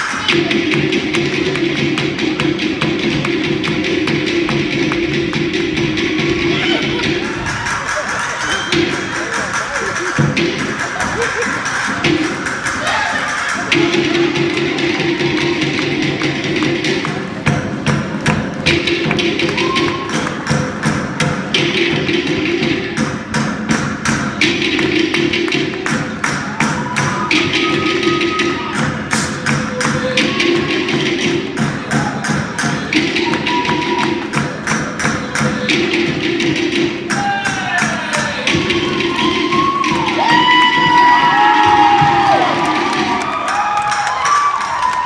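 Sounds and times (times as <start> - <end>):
fast steady drumming: 0.0 - 45.0.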